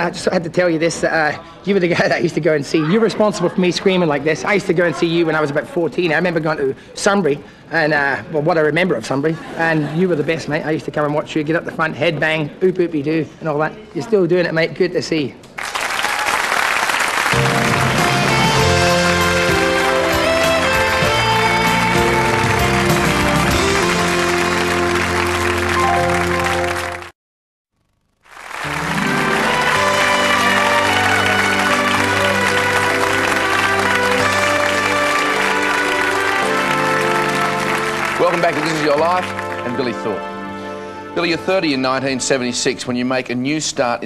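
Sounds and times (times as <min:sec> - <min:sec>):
audience applauding: 0:15.6 - 0:27.1, 0:28.2 - 0:40.2
music with long held notes: 0:17.4 - 0:27.1, 0:28.6 - 0:42.4.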